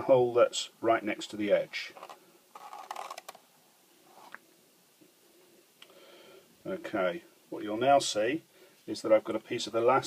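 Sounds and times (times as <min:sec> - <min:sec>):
cord scraping through leather: 0:01.9 - 0:03.3.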